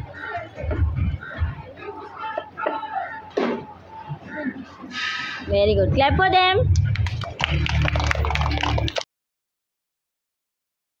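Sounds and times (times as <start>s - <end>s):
children clapping: 6.8s - 9.1s.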